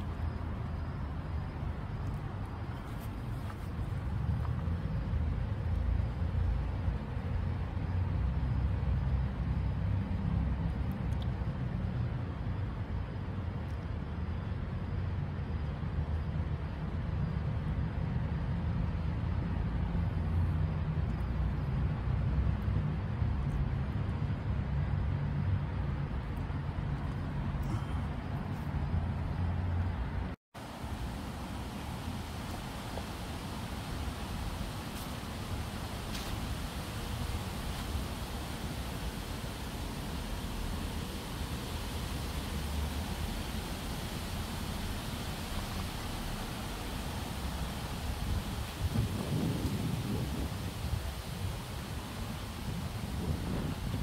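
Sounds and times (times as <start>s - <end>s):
low urban rumble: 0.0s - 54.0s.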